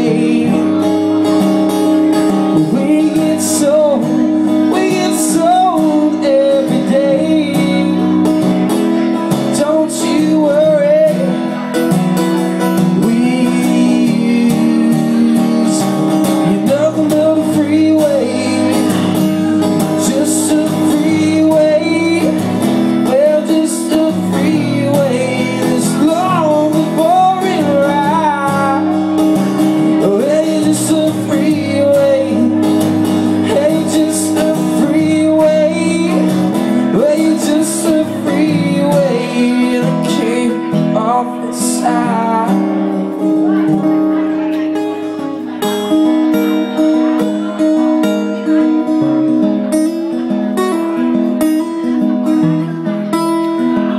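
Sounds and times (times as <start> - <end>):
acoustic guitar strumming: 0.0 - 53.9
man singing: 0.0 - 53.9.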